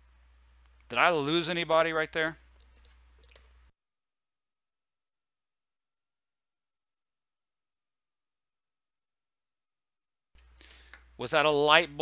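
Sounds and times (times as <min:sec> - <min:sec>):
small clicks: 0:02.5 - 0:03.7.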